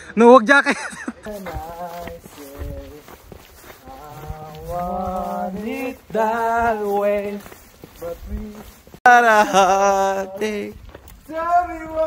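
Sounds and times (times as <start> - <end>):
man laughing: 0.5 - 1.5, 9.2 - 10.3.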